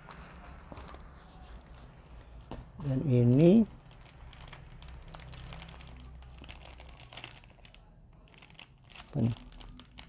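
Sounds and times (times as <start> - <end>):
plastic bag crinkling: 3.4 - 10.0.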